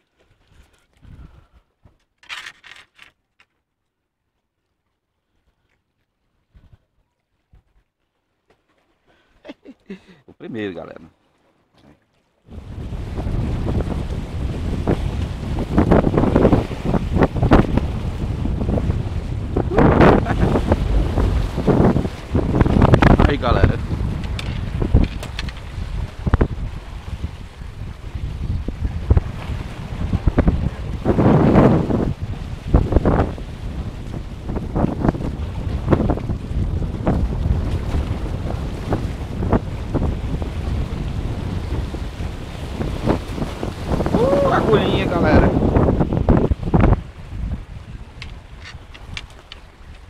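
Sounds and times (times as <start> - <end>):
wind buffeting microphone: 1.0 - 1.7, 12.5 - 50.0
surf breaking against rocks: 12.5 - 50.0.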